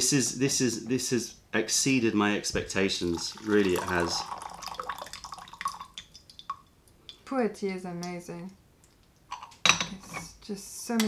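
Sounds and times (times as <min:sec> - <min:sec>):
tea pouring into glass pitcher: 0:02.7 - 0:06.6
water drips: 0:03.0 - 0:07.3.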